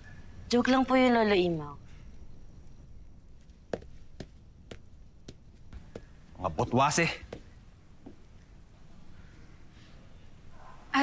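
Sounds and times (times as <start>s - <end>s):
footsteps in boots: 3.4s - 6.4s, 7.2s - 8.2s.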